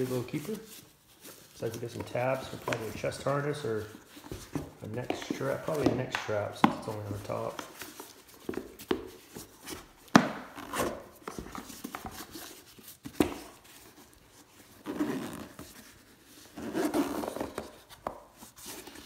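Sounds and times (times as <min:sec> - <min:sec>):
case rubbing and scraping: 0:00.0 - 0:14.0, 0:14.7 - 0:19.0.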